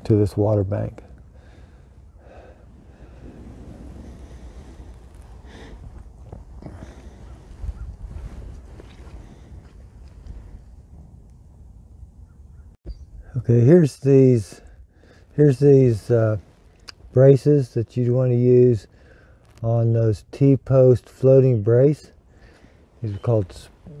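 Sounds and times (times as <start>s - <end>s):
wind rumbling on microphone: 0.0s - 13.4s.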